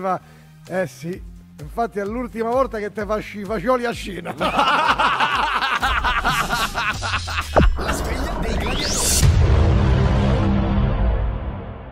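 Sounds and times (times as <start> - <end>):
men laughing hard: 4.2 - 8.1.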